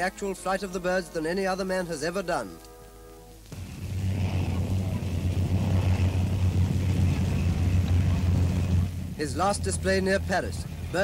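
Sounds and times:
propeller plane engine drone: 0:03.6 - 0:11.0.

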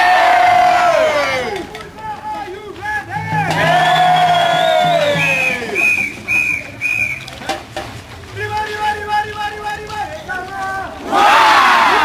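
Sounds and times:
held note sliding down: 0:03.1 - 0:06.0
high-pitched whistle blasts: 0:03.2 - 0:07.4.

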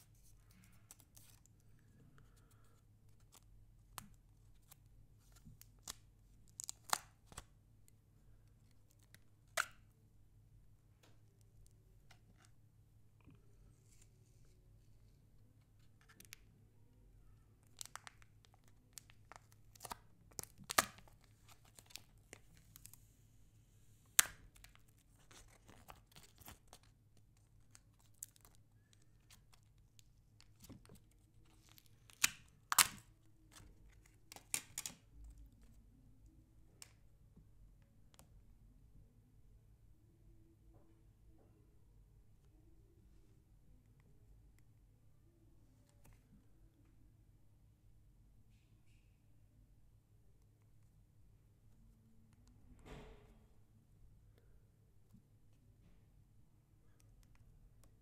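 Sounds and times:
plastic packaging clicks and crackles: 0:04.0 - 0:07.5, 0:17.6 - 0:23.0, 0:24.2 - 0:35.1
plastic film crinkles: 0:17.6 - 0:23.0.

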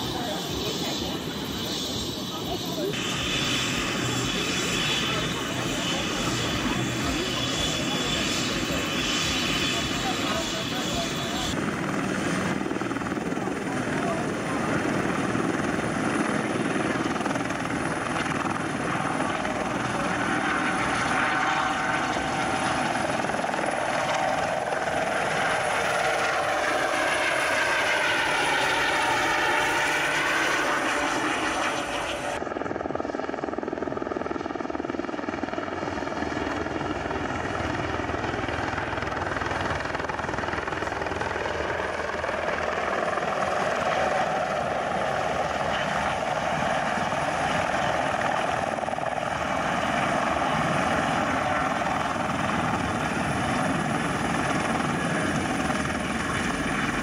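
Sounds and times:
helicopter turbine and rotor: 0:00.0 - 0:57.0.

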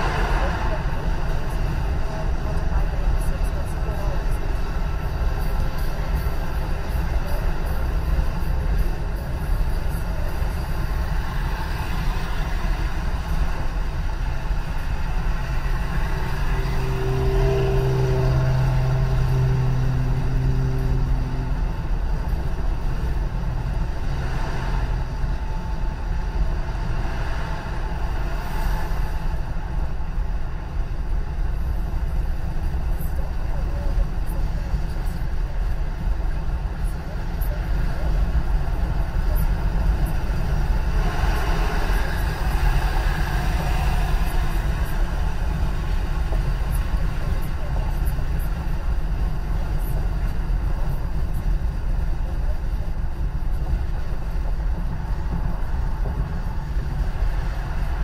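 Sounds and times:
car road noise: 0:00.0 - 0:58.0.

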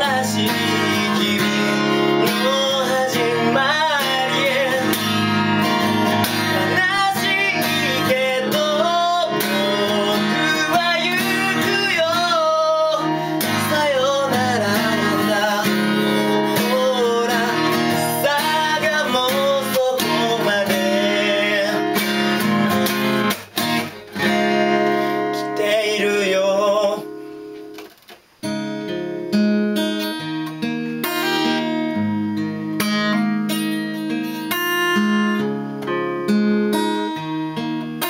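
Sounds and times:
person singing: 0:00.0 - 0:22.8, 0:24.2 - 0:27.2
acoustic guitar strumming: 0:00.0 - 0:38.0.

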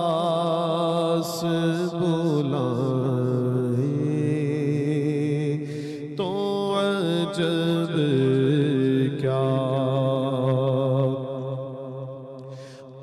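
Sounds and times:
man singing devotional song: 0:00.0 - 0:13.0.

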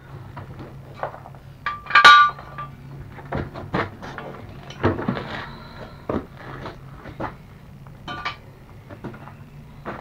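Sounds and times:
low steady hum: 0:00.0 - 0:10.0
loud ringing metallic clank: 0:01.6 - 0:02.8, 0:08.1 - 0:08.5
tools clinking on steel parts: 0:01.6 - 0:02.8, 0:08.1 - 0:08.4.

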